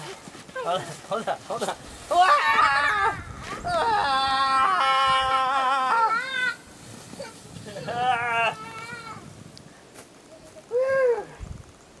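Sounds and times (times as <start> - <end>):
toddler calling out: 7.2 - 9.3.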